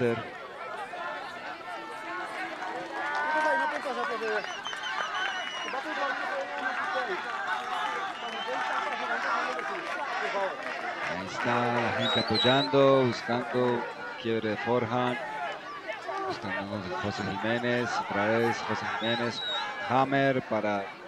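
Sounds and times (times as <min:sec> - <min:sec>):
crowd shouting and cheering: 0:00.0 - 0:21.0.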